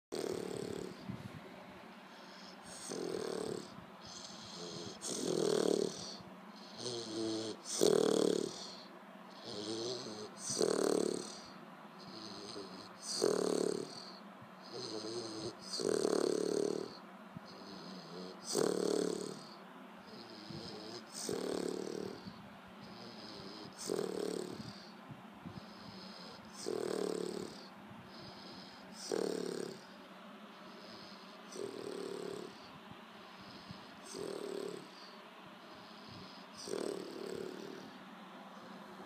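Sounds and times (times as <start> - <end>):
puppy snoring: 0.1 - 1.1, 2.2 - 32.7, 33.4 - 39.0.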